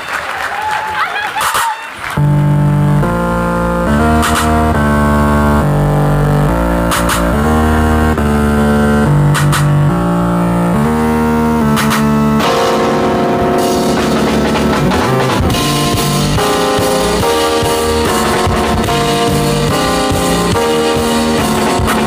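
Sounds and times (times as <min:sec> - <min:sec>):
sustained chords: 0:02.2 - 0:22.0
short sharp hits: 0:11.7 - 0:22.0
amplified live band playing: 0:11.8 - 0:22.0
drums and guitar: 0:11.8 - 0:22.0.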